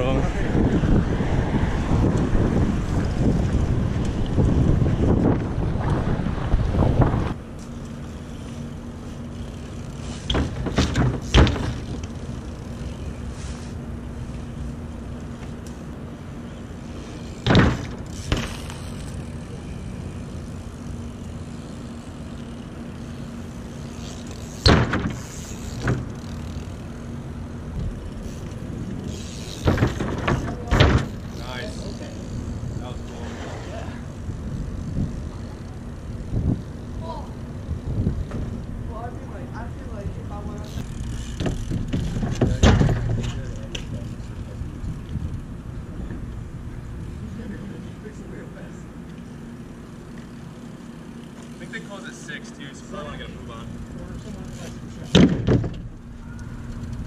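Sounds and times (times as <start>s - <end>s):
steady low hum: 0.0s - 57.0s
bikes landing on asphalt: 2.0s - 13.8s, 16.6s - 19.5s, 23.1s - 32.2s, 37.9s - 39.1s, 40.3s - 45.3s, 54.6s - 57.0s
bikes clattering on plywood: 2.2s - 13.8s, 16.6s - 46.4s, 53.9s - 57.0s.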